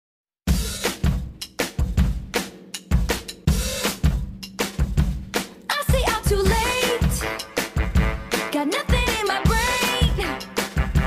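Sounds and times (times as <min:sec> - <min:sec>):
drum kit beat: 0:00.5 - 0:11.0.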